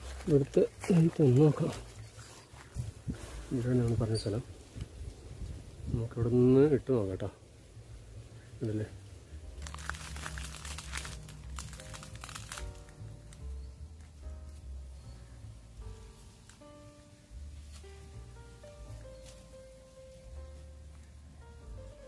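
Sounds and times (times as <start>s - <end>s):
crackling crinkling noises: 0.0s - 22.0s
music with held notes and bass: 7.7s - 22.0s.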